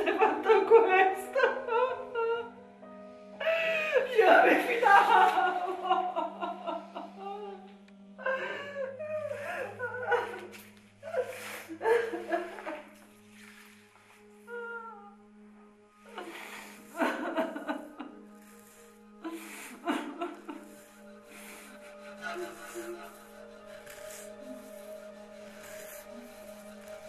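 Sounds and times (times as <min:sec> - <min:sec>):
low droning film music: 0:00.0 - 0:27.0.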